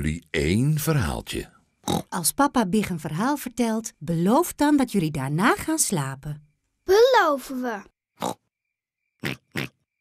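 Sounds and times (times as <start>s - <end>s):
cartoon pig snorts: 8.2s - 8.4s.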